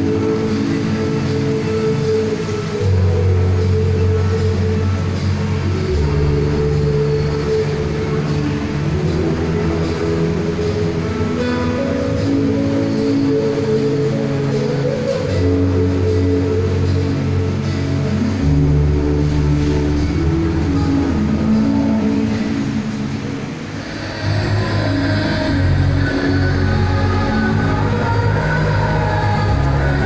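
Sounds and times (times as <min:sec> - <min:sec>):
backing music with low bass: 0:00.0 - 0:30.0.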